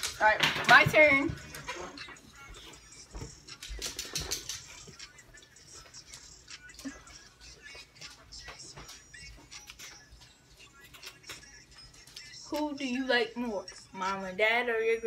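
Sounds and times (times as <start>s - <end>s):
tinny music from earbuds: 0.0s - 15.0s.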